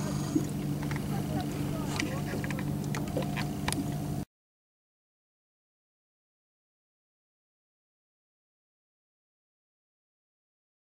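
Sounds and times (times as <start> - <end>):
boat motor humming: 0.0 - 4.3.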